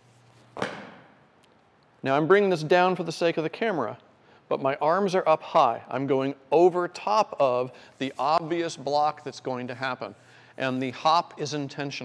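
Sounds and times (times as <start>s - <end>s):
fencer landing from a hop: 0.6s - 1.2s.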